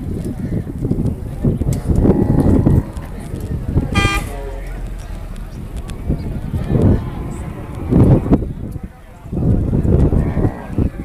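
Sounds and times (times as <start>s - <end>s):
voices: 0.0s - 11.0s
low rumble: 1.2s - 10.3s
vehicle horn toot: 3.9s - 5.8s.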